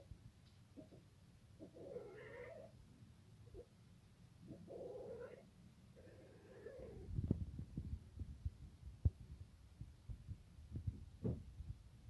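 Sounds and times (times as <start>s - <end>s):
cat yowling: 1.6s - 2.7s, 4.7s - 5.4s, 6.0s - 7.1s.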